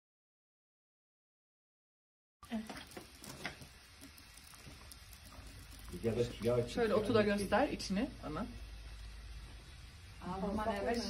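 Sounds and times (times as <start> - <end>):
dried herbs crumbling and pattering: 2.6 - 6.8.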